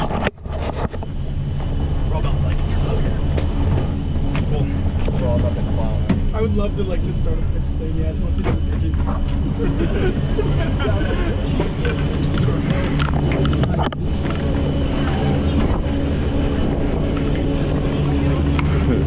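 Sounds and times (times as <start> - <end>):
machinery hum and rumble: 0.0 - 19.0
muffled voices: 1.8 - 19.0.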